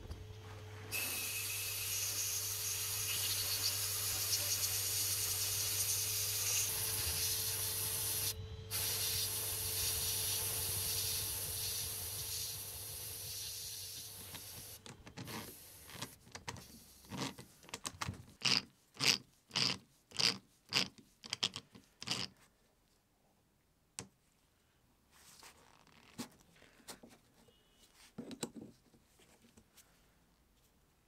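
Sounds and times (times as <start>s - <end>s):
sandblast gun hissing: 0.9s - 14.8s
steady low hum: 6.6s - 16.0s.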